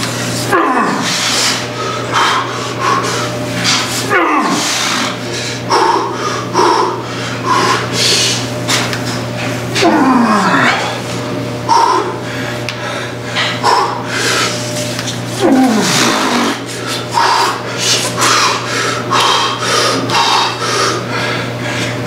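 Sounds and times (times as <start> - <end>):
steady low hum: 0.0 - 22.0
man groaning: 0.4 - 3.0, 4.0 - 7.0, 9.7 - 11.0, 15.4 - 20.6
man breathing hard and fast: 1.0 - 8.6, 11.6 - 22.0.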